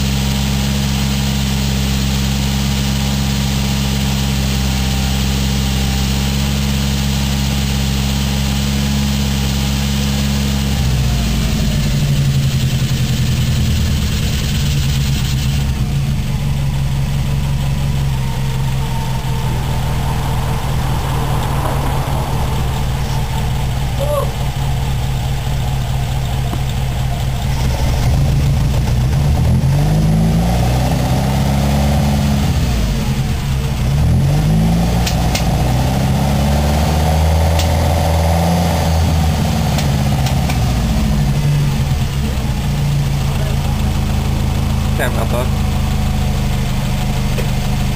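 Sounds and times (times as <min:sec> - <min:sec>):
car engine idling and revving: 0:00.0 - 0:47.9.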